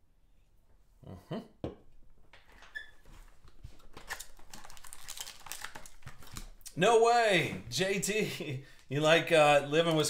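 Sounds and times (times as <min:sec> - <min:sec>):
wrapper and cardboard crackling: 0:03.8 - 0:06.7.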